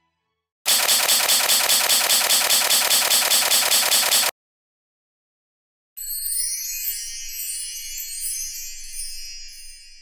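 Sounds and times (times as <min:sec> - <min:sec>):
rapid rattling pulses: 0:00.7 - 0:04.3.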